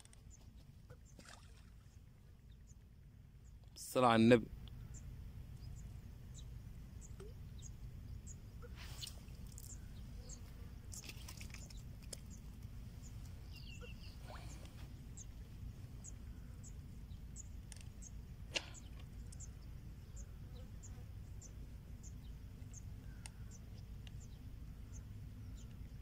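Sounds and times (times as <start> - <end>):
low steady rumble: 0.0 - 26.0.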